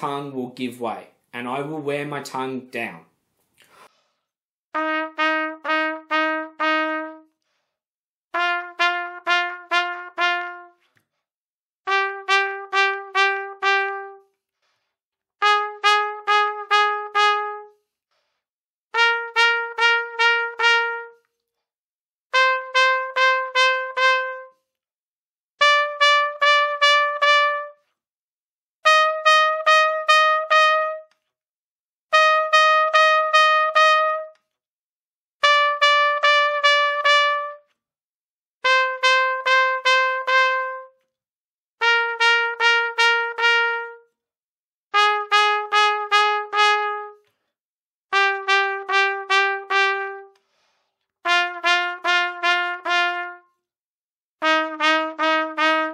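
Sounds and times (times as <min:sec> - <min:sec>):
trumpet double-tonguing notes: 0:04.8 - 0:07.3, 0:08.3 - 0:10.8, 0:11.9 - 0:14.3, 0:15.4 - 0:17.7, 0:19.0 - 0:21.3, 0:22.3 - 0:24.6, 0:25.6 - 0:27.8, 0:28.8 - 0:31.1, 0:32.1 - 0:34.4, 0:35.4 - 0:37.7, 0:38.6 - 0:41.0, 0:41.8 - 0:44.1, 0:45.0 - 0:47.2, 0:48.1 - 0:50.4, 0:51.2 - 0:53.4, 0:54.4 - 0:55.9.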